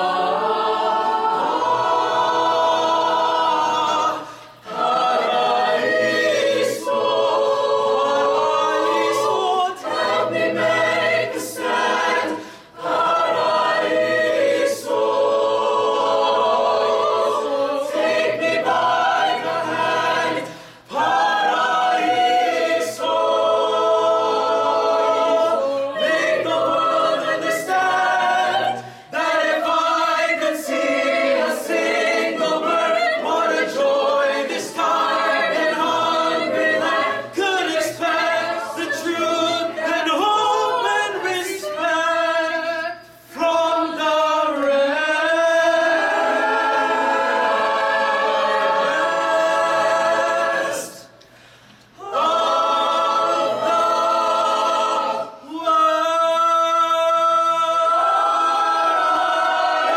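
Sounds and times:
choir singing a cappella: 0.0 - 59.9.

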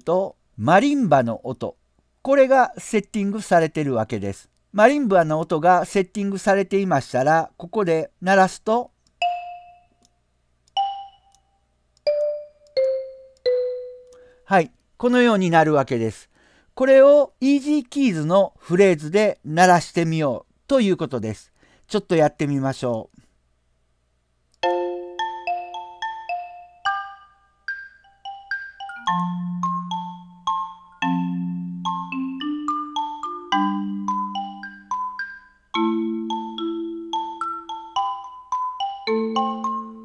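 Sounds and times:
marimba notes: 12.1 - 14.2, 24.6 - 40.0
marimba note: 29.0 - 34.9.

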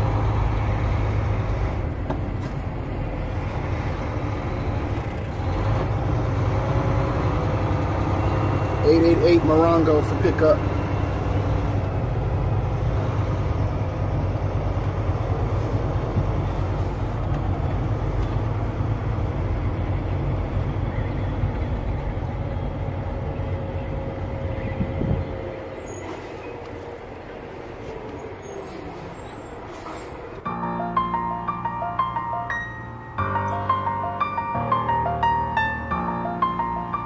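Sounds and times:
vehicle engine and road rumble: 0.0 - 37.0.

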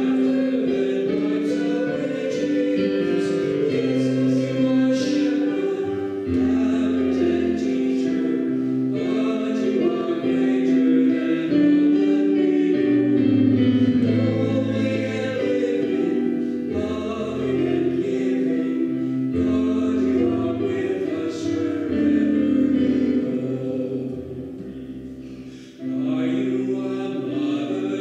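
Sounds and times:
choir singing a hymn: 0.0 - 28.0.

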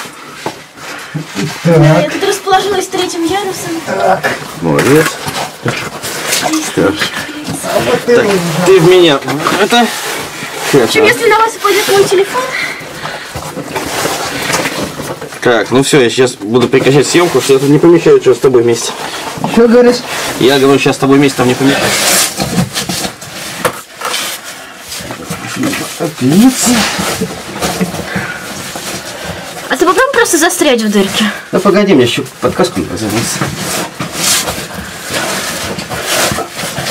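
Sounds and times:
gear scraping against rock: 1.8 - 15.8, 32.1 - 36.9.

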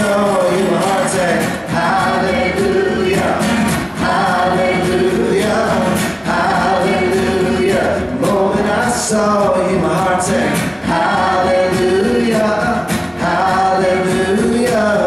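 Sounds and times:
man and woman singing in harmony: 0.0 - 15.0
strummed acoustic guitars: 0.0 - 15.0.

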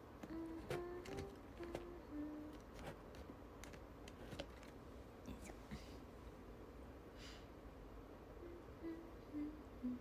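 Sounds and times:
soft breath: 5.3 - 6.2, 7.1 - 7.6.

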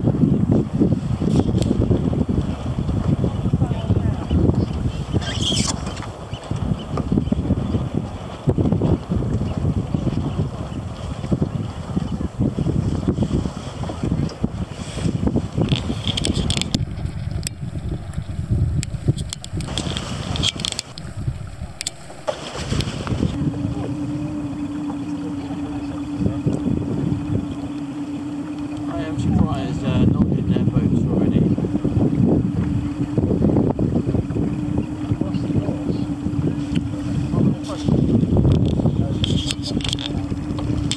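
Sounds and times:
wind buffeting microphone: 0.0 - 40.9
engine hum: 13.8 - 40.9.

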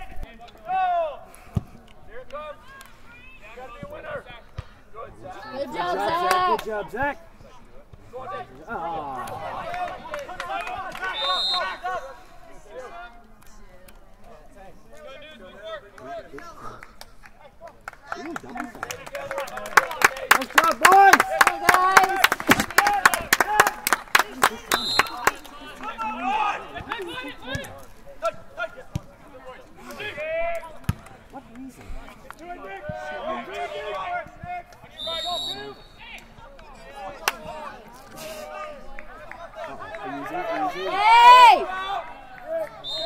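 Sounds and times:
voices shouting: 8.4 - 13.0, 38.5 - 43.0
referee's whistle: 11.0 - 12.0, 24.7 - 25.4, 34.9 - 36.1, 42.8 - 43.0.

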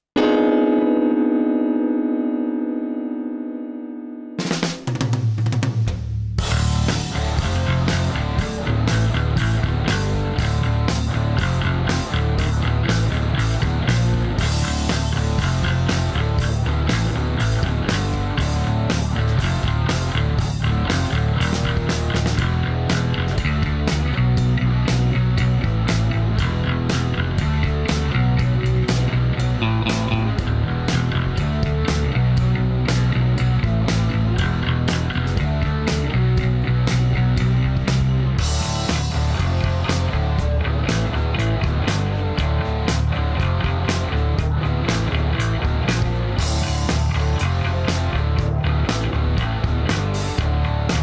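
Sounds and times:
drums with high ticks: 4.4 - 51.0.

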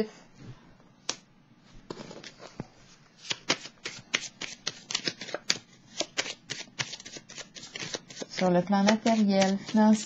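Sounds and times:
cards being shuffled: 3.2 - 10.0.

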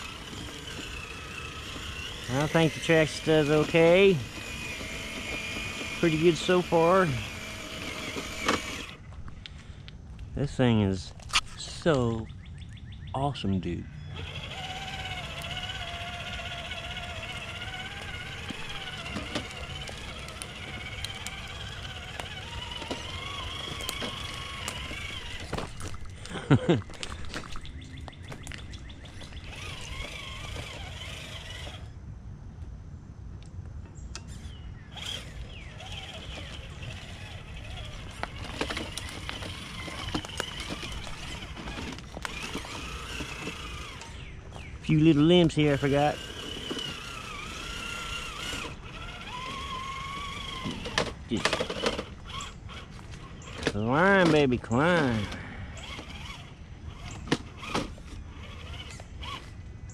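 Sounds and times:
rc car motor whining: 0.0 - 12.1, 13.8 - 32.0, 34.2 - 59.9
person laughing: 26.2 - 27.2.

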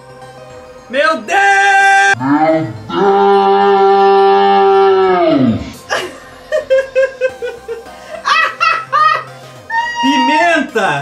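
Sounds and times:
long moo-like call: 1.9 - 5.8.

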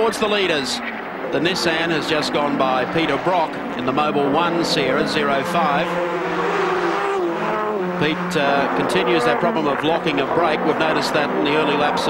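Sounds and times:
racing car engine at high revs: 0.0 - 12.0.

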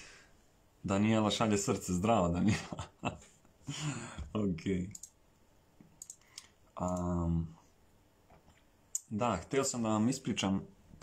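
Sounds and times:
faint sharp clicks: 4.9 - 7.1.

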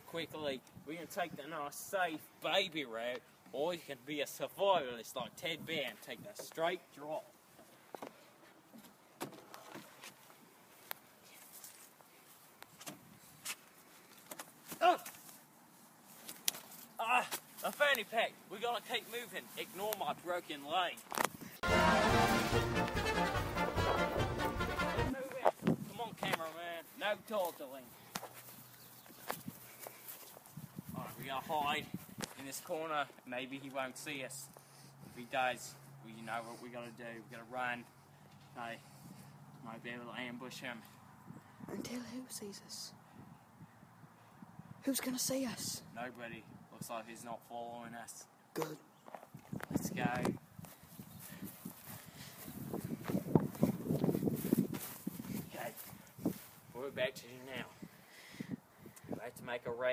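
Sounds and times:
faint footsteps: 20.9 - 32.8, 49.0 - 56.8
footsteps thudding: 52.7 - 56.5.

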